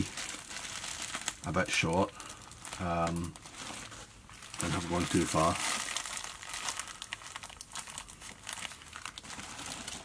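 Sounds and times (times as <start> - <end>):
plastic packet crinkling: 0.0 - 10.0.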